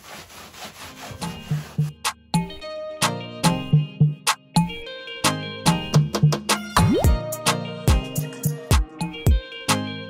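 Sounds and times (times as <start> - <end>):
rag rubbing wax onto wood: 0.0 - 2.2
background music: 0.8 - 10.0.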